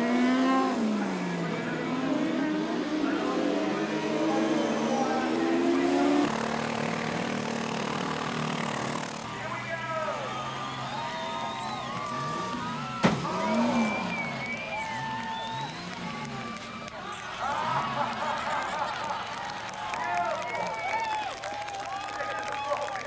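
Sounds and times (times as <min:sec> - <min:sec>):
car engines revving: 0:00.0 - 0:22.6
car impact bang: 0:13.0 - 0:13.5.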